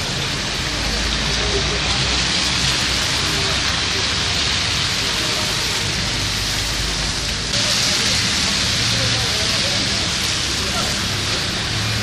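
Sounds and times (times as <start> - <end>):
wet hiss of slush on road: 0.0 - 12.0.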